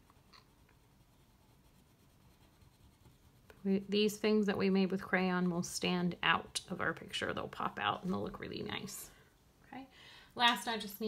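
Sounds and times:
crayon scribbling on paper: 0:00.5 - 0:04.4.

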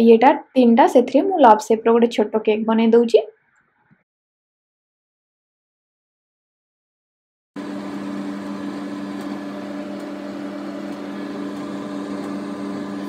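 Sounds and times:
microwave oven humming: 0:07.6 - 0:13.0.

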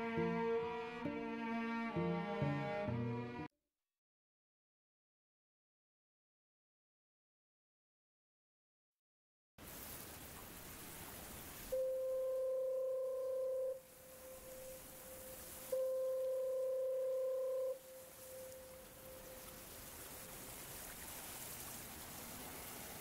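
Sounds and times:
background hiss: 0:09.6 - 0:23.0
long steady mid-pitched tones: 0:11.6 - 0:21.0.

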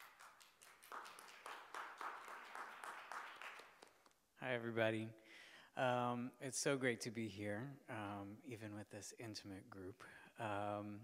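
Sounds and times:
light scattered applause: 0:00.0 - 0:04.0.

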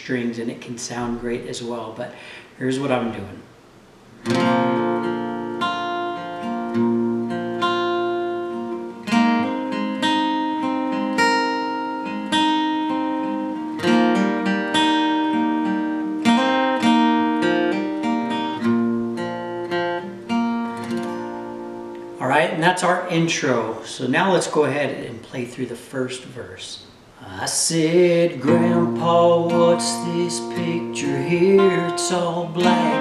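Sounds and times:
fingerpicked acoustic guitar: 0:04.1 - 0:24.6, 0:27.3 - 0:33.0.

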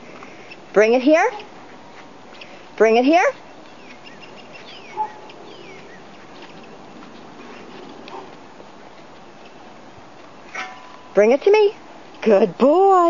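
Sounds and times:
outdoor background hiss: 0:00.0 - 0:13.0
faint bird chirps: 0:03.4 - 0:06.7.

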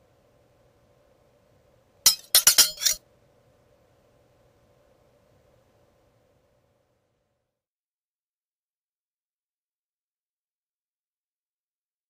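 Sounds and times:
sharp clinking hits: 0:02.1 - 0:03.0.

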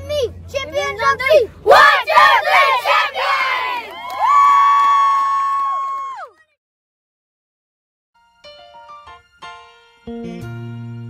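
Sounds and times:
children shouting a cheer: 0:01.7 - 0:06.6.

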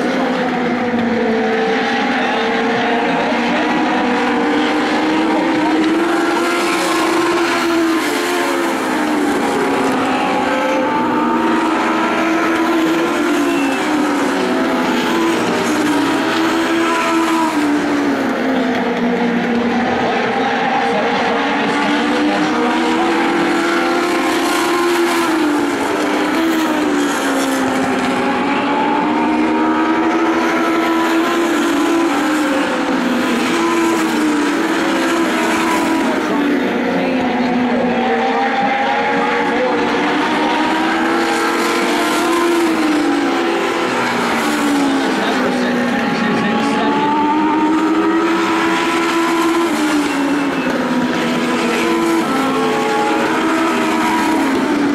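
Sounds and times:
race car engines running hard: 0:00.0 - 0:54.9.

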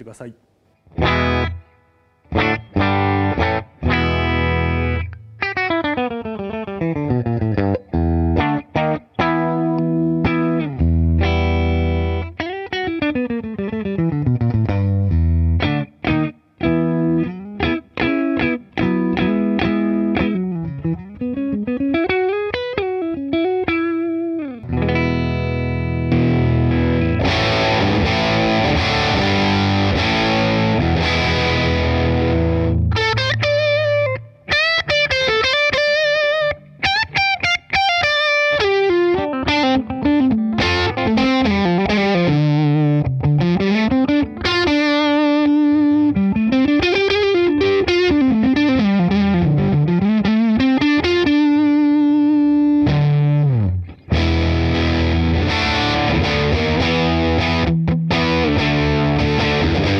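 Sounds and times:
electric guitar playing: 0:00.7 - 0:59.9.

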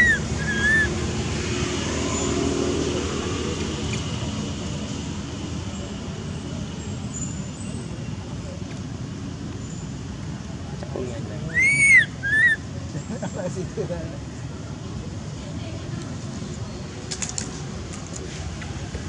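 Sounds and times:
vehicle passing: 0:00.0 - 0:05.6.

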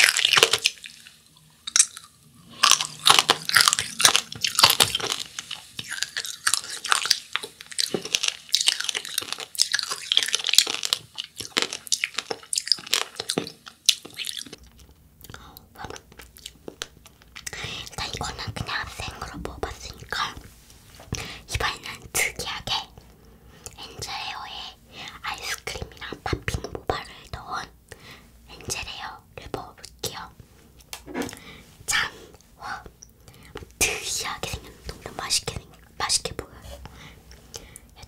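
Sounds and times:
girl whispering: 0:17.4 - 0:20.4, 0:21.4 - 0:23.0, 0:23.8 - 0:27.8, 0:28.5 - 0:30.4, 0:31.8 - 0:33.0, 0:33.6 - 0:36.8.

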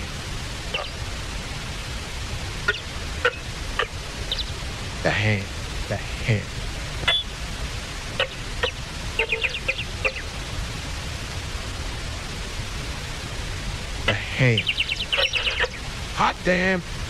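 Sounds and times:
static hiss: 0:00.0 - 0:17.0
clipped vocal fragments: 0:14.1 - 0:14.7.

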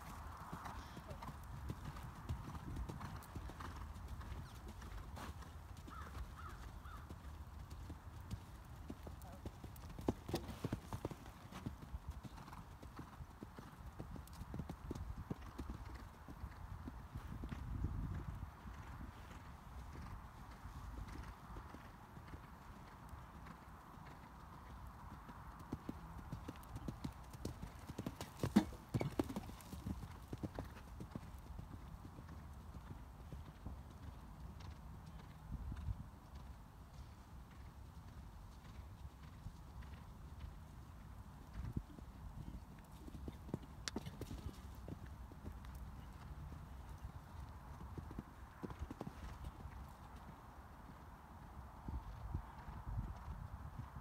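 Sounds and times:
horse hooves cantering on sand: 0:00.0 - 0:54.0.

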